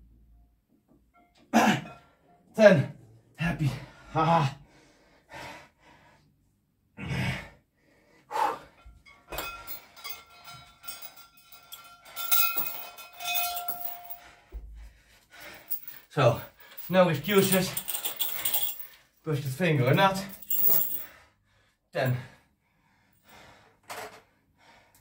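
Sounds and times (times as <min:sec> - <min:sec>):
heavy breathing: 0:03.6 - 0:06.4, 0:07.0 - 0:12.3, 0:13.6 - 0:19.2, 0:20.4 - 0:25.0
weight plate clinking: 0:09.0 - 0:14.2
chain jangling: 0:09.0 - 0:14.5, 0:15.4 - 0:21.2.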